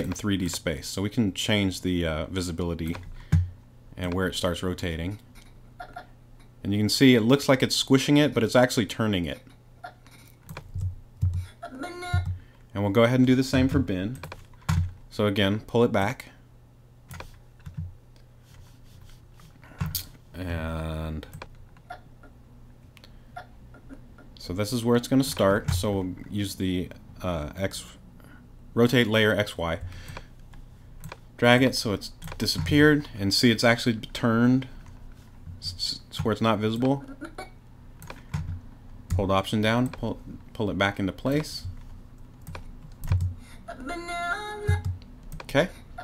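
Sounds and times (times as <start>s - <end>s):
faint low hum: 0.0s - 46.0s
keyboard and mouse clicks: 2.8s - 3.4s, 10.3s - 11.5s, 14.1s - 14.9s, 17.1s - 17.9s, 32.2s - 32.8s, 41.2s - 43.3s.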